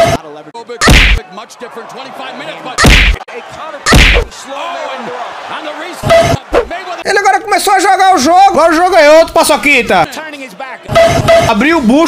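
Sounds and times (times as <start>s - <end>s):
punch impact smack: 0.8s - 1.2s, 2.8s - 3.2s, 3.9s - 4.3s.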